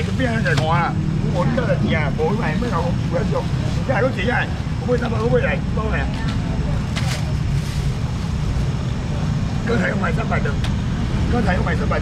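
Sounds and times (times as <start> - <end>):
street market background noise: 0.0 - 12.0.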